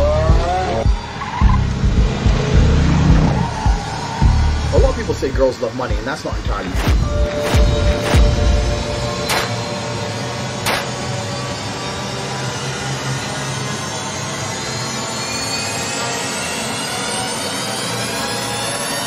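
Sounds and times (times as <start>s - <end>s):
rising cinematic swell: 0.0s - 18.7s
sharp hits: 6.3s - 11.4s.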